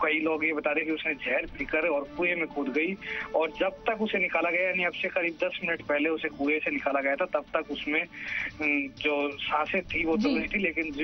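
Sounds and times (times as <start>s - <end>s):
faint background music: 0.0s - 11.0s
reporter talking: 0.0s - 11.0s.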